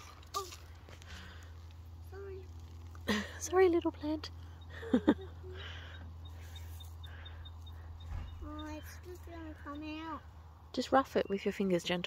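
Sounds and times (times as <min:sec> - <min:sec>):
soil and roots rustling: 0:00.0 - 0:04.1
steady low hum: 0:00.0 - 0:12.0.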